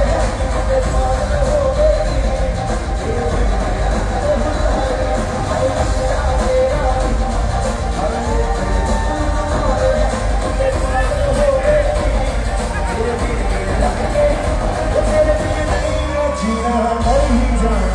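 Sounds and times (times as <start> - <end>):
pop music over loudspeakers: 0.0 - 17.9
singer with band: 0.0 - 17.9.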